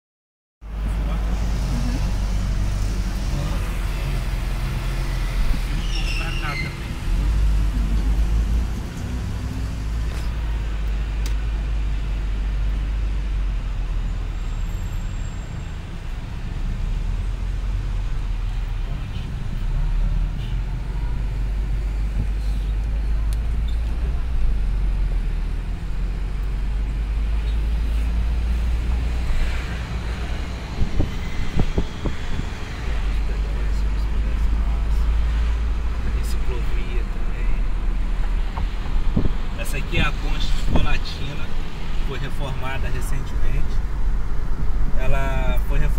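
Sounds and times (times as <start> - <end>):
car engine and road rumble: 0.6 - 45.9.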